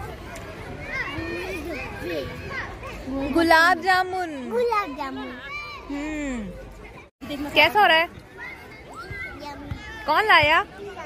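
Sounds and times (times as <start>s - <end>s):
children chattering and calling: 0.0s - 11.0s.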